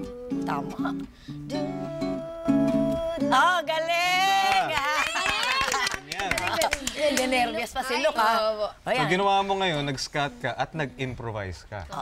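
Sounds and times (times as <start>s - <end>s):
acoustic guitar strumming: 0.0s - 4.0s.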